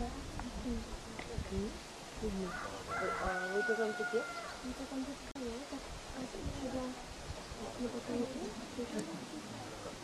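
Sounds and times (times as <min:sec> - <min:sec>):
people talking: 0:00.0 - 0:10.0
rooster crowing: 0:02.5 - 0:04.7.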